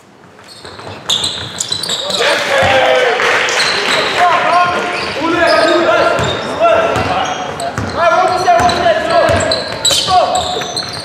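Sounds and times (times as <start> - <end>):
basketball bouncing on wooden floor: 0.2 - 2.8, 6.2 - 11.0
voices shouting in sports hall: 1.7 - 11.0.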